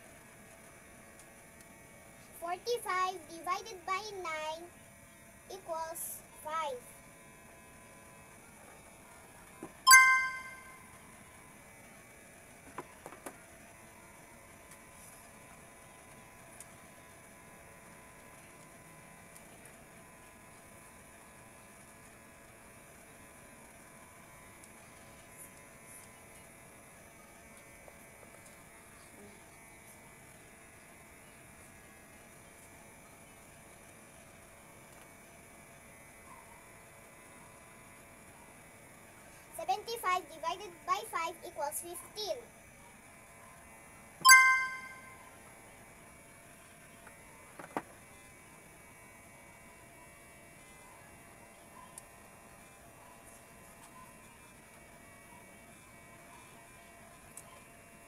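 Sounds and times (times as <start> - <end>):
faint steady hum: 0.0 - 45.9.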